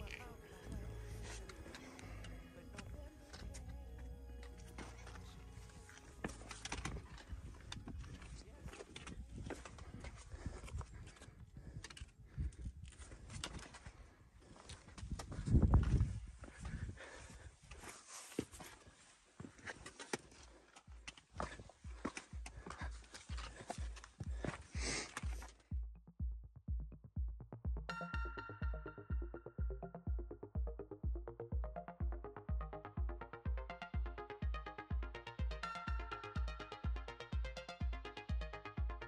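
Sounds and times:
footsteps on loose rocks: 4.4s - 25.8s
wind buffeting microphone: 15.0s - 17.1s.

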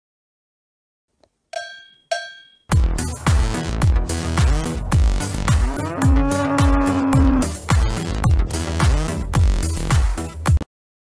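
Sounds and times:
cowbell clangs: 1.6s - 2.7s
electronic music with heavy bass: 2.7s - 10.6s.

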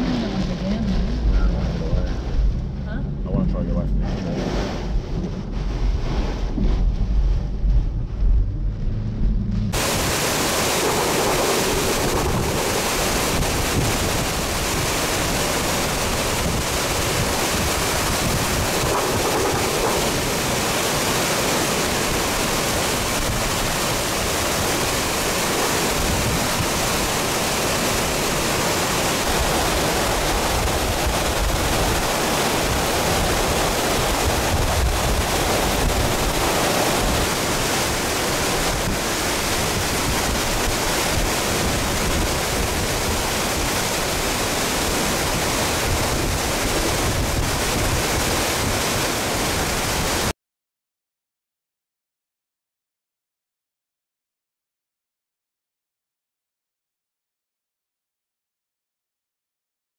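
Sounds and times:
wind and heavy rain: 0.0s - 50.4s
wind gusts buffeting microphone: 4.7s - 50.3s.

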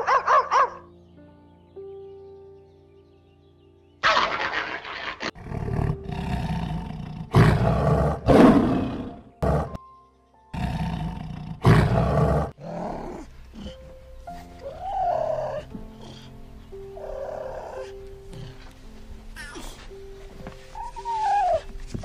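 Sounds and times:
soft background music: 0.0s - 22.0s
lioness roaring: 10.6s - 13.8s.

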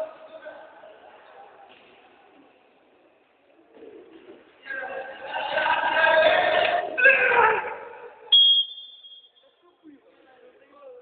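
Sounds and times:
men shouting in a hall: 4.6s - 8.3s
referee's whistle blast: 8.3s - 9.5s.

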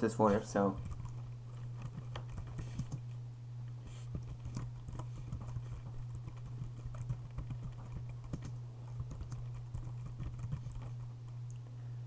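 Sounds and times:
low hum: 0.0s - 12.0s
keyboard typing clicks: 4.1s - 10.9s.

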